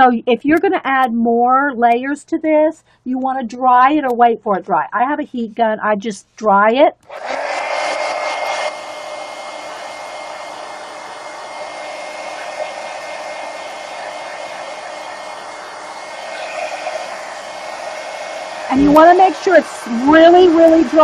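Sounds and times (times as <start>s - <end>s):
heat gun blowing air: 7.0s - 21.0s.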